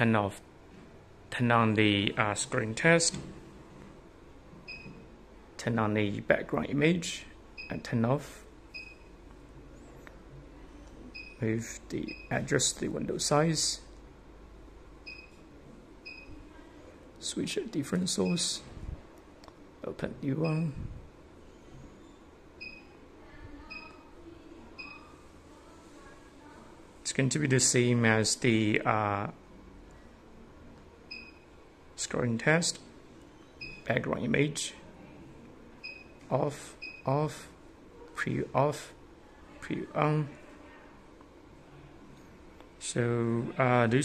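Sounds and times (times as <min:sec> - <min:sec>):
low room noise: 0:00.0 - 0:44.0
faint electronic beep: 0:20.4 - 0:20.8, 0:23.6 - 0:24.1, 0:24.8 - 0:25.2.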